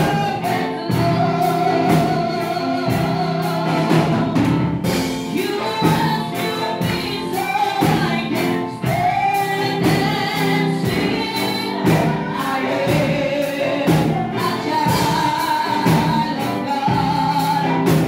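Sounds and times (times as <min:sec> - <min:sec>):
gospel choir singing over beat: 0:00.0 - 0:18.0.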